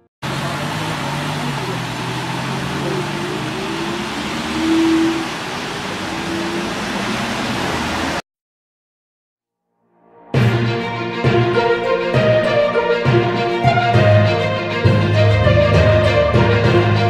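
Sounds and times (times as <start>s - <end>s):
cars driving past: 0.2s - 8.2s.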